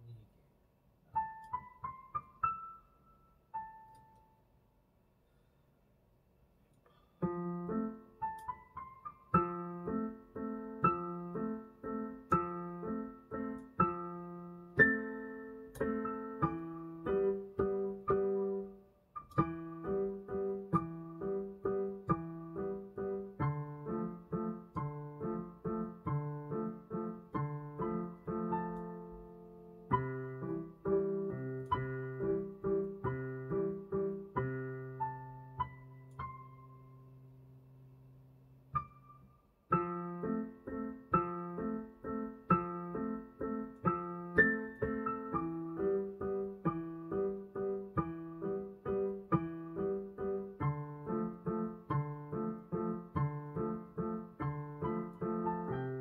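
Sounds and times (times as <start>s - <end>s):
digital piano chords and melody: 1.0s - 4.6s, 6.8s - 56.0s.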